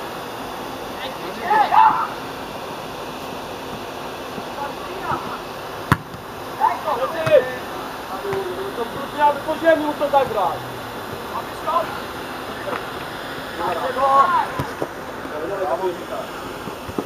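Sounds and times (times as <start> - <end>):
background hiss: 0.0 - 17.0
players shouting: 0.9 - 2.5, 4.4 - 15.6
ball being kicked: 5.8 - 6.3, 7.2 - 7.6, 8.3 - 8.6, 14.5 - 14.9.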